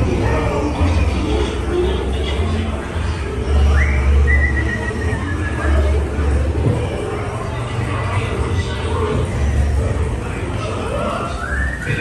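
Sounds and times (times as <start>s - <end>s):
low rumble of ride soundtrack: 0.0s - 12.0s.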